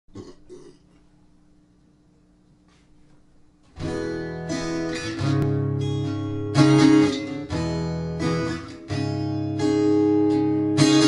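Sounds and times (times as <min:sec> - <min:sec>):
person making throaty sounds: 0:00.1 - 0:01.0
faint steady hum: 0:00.1 - 0:08.2.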